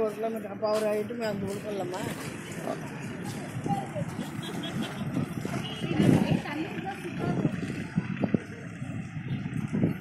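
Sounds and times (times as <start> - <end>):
voices in background: 0.0 - 10.0.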